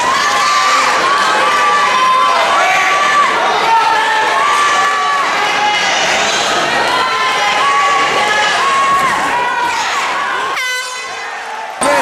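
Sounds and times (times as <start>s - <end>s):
crowd shouting and yelling: 0.0s - 12.0s
horn blast: 10.6s - 11.2s.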